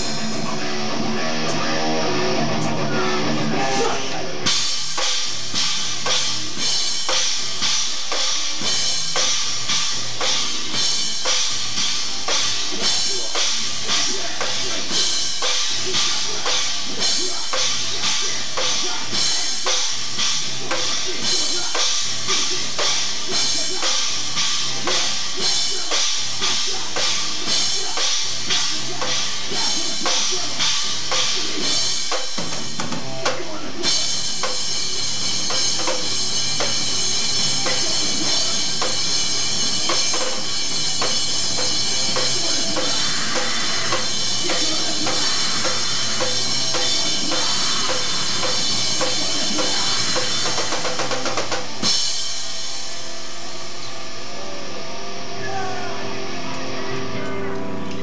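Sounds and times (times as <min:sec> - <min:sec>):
rock band playing live: 0:00.0 - 0:58.0.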